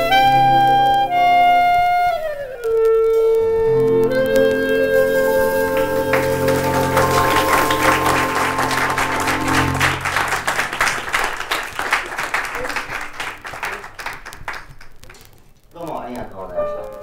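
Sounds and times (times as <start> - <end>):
jazz combo chord: 0.0 - 1.8, 3.7 - 10.7
audience applauding: 4.1 - 15.5.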